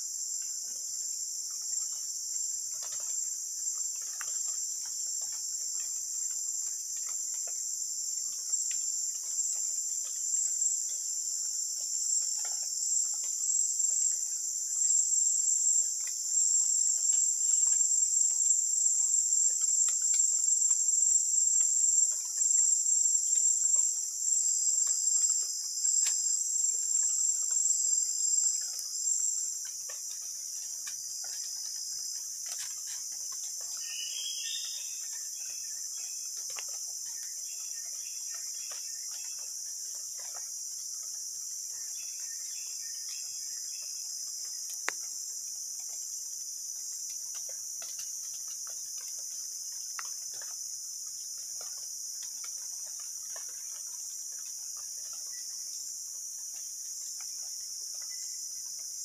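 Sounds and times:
faint ticks and rustles: 0.0 - 59.0
insect chorus trilling: 0.0 - 59.0.

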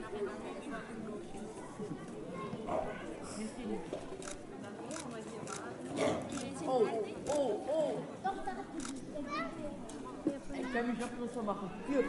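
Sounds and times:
children's voices: 0.0 - 3.9, 8.2 - 12.0
people chattering: 0.0 - 12.0.

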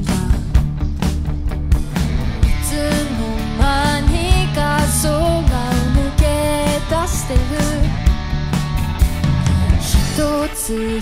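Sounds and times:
held melody line: 0.0 - 11.0
live pop-rock band: 0.0 - 11.0.

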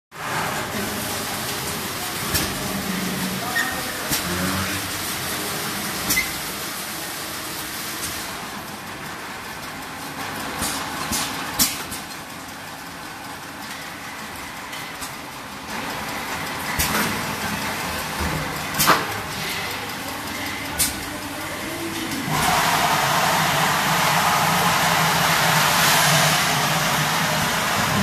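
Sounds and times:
filling machine running: 0.2 - 28.0.

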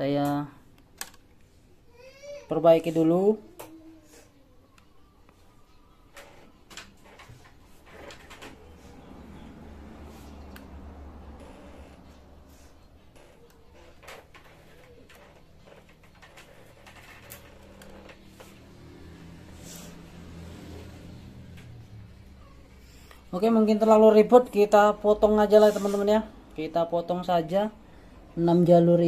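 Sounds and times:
small clicks and rustles of tape: 0.8 - 1.6, 13.2 - 18.6.

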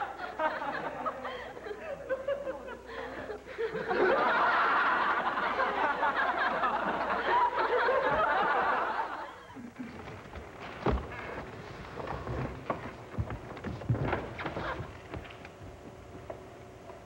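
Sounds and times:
audience laughter: 0.0 - 10.0.

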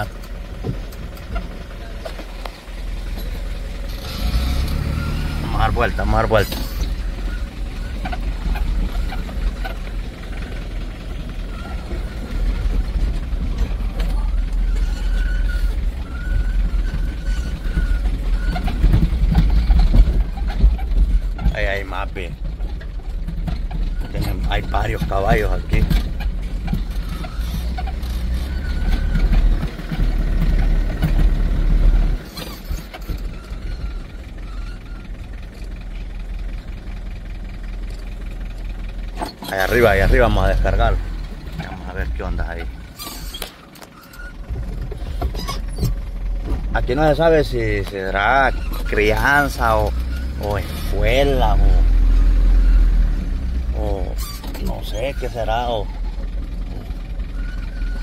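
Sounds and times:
truck engine low rumble: 0.0 - 58.0
indistinct voices: 46.7 - 52.0, 53.7 - 55.9.

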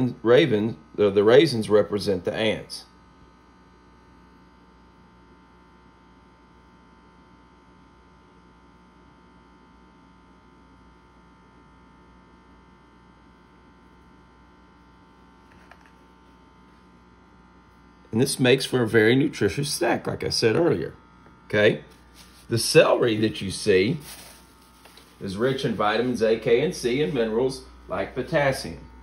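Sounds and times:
faint electrical hum: 0.0 - 29.0.

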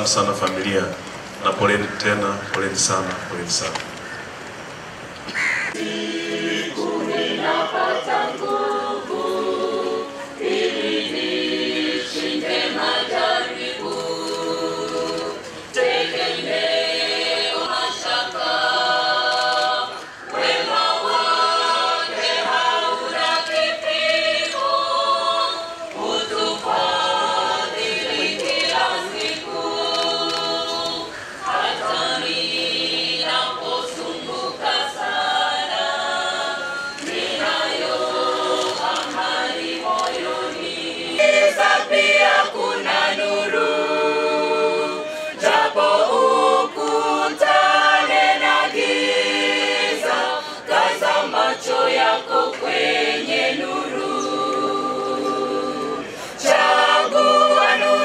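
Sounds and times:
choir singing: 5.7 - 58.0.

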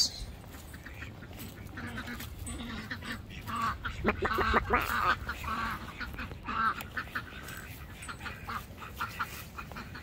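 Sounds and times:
ducks quacking: 0.0 - 10.0.

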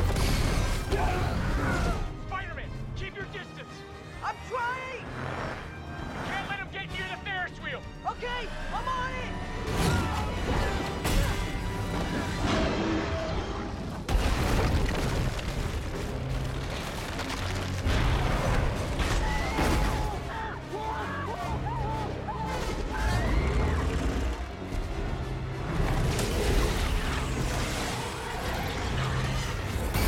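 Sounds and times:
orchestral score: 0.0 - 14.2, 15.8 - 30.0.

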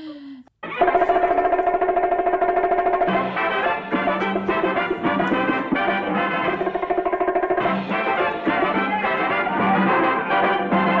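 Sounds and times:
rapid bongo roll: 0.7 - 11.0
dance band holding chord: 2.5 - 10.2.

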